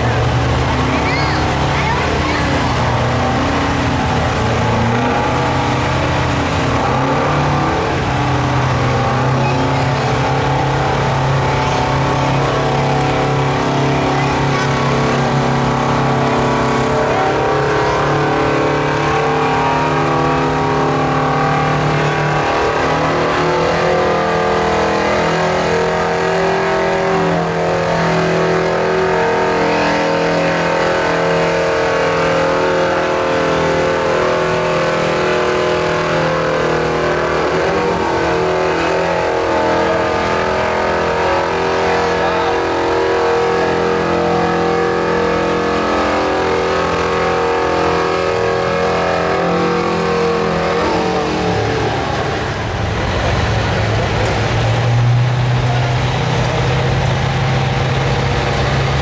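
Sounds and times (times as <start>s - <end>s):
tractor engine under full load: 0.0s - 59.0s.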